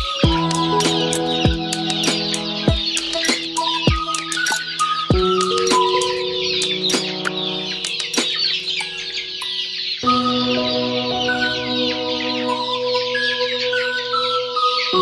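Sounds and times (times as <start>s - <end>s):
background music with sustained chords: 0.0s - 15.0s
chicks cheeping and clucking: 0.0s - 15.0s.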